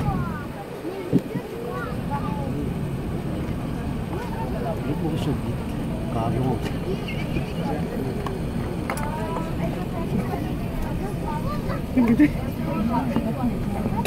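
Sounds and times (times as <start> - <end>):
low rumble of engines and wheels: 0.0 - 14.0
passengers talking: 0.0 - 14.0.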